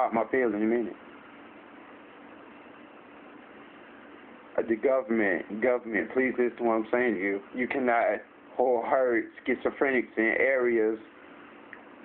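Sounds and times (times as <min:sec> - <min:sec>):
faint hum: 0:00.0 - 0:12.0
low hiss: 0:00.0 - 0:12.0.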